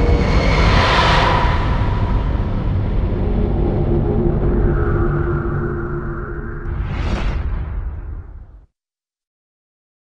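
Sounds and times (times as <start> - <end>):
deep steady rumble: 0.0 - 8.7
rushing whoosh: 0.0 - 8.7.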